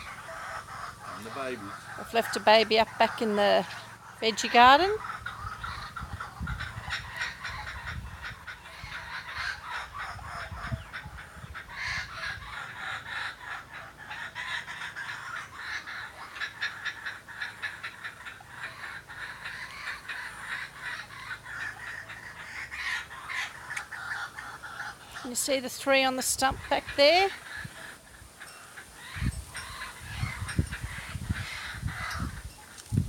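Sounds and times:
kookaburras cackling: 0.0s - 33.0s.

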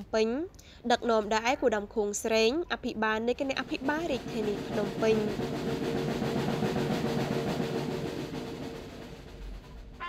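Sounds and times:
drum roll: 3.1s - 10.0s.

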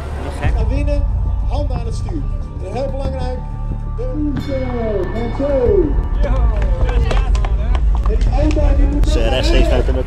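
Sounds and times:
people talking: 0.2s - 3.4s, 4.0s - 10.0s.

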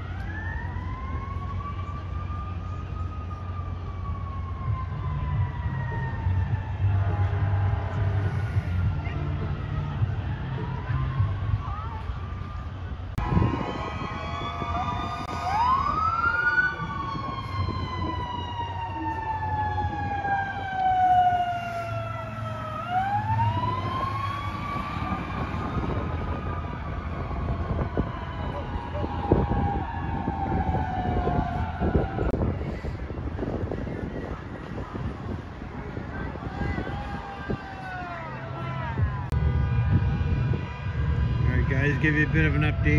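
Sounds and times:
fire engine siren wailing: 0.0s - 42.9s
low vehicle rumble: 0.0s - 42.9s
crowd chatter: 27.6s - 41.4s.

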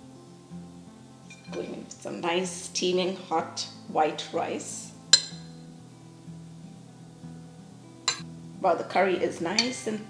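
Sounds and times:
quiet background music: 0.0s - 10.0s
metal spoon clinking ceramic dish: 1.3s - 1.8s, 9.6s - 9.8s.

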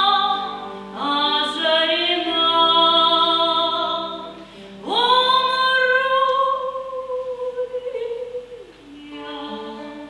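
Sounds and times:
classical guitar: 0.0s - 10.0s
woman singing: 0.0s - 10.0s
singer breathing: 4.4s - 4.8s.

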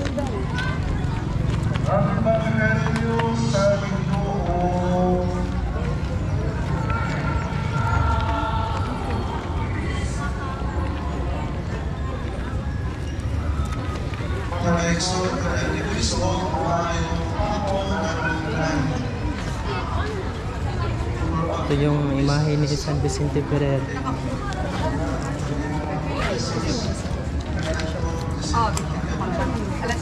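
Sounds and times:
people talking outdoors: 0.0s - 30.0s.

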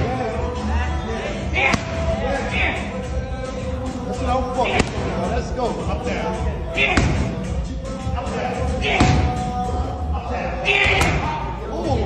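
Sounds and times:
voices in echoing gym: 0.0s - 12.0s.

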